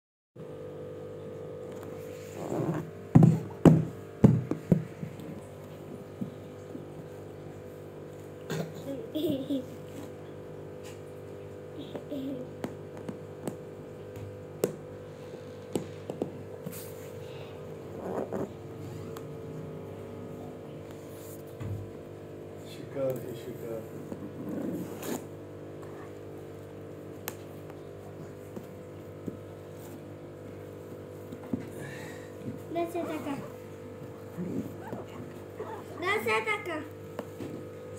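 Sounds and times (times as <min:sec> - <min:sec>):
steady hum: 0:00.4 - 0:37.9.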